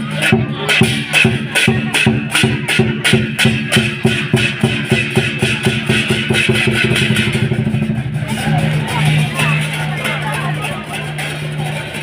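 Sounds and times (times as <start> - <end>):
big drum beating: 0.0 - 12.0
cymbals clashing: 0.0 - 12.0.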